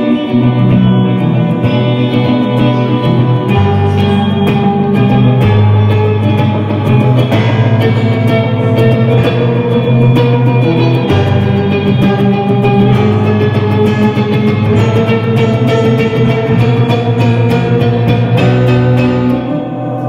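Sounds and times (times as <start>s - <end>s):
electric guitar: 0.0s - 20.0s
keyboard accompaniment: 0.0s - 20.0s
low bass note: 0.0s - 20.0s.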